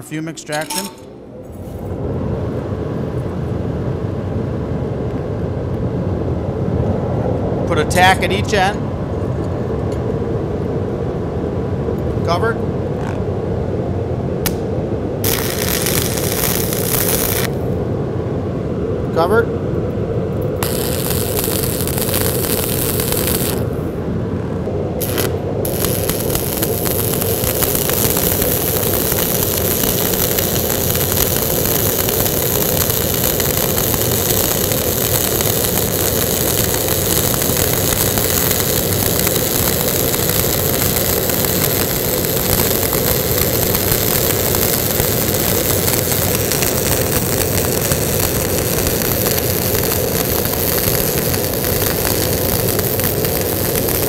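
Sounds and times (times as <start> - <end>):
welding arc crackling: 15.2 - 17.6, 20.6 - 23.8, 25.0 - 54.0.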